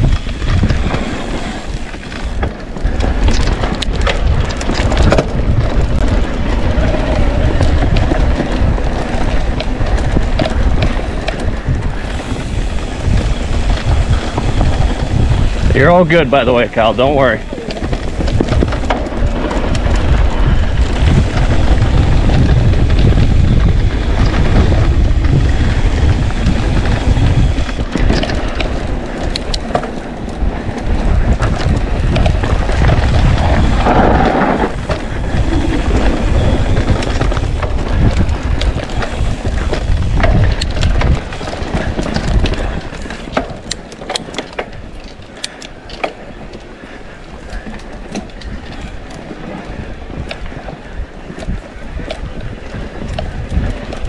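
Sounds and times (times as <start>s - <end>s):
bike rumbling and rattling: 0.0s - 54.0s
sharp clicks and rattles: 0.0s - 54.0s
wind buffeting microphone: 0.0s - 54.0s.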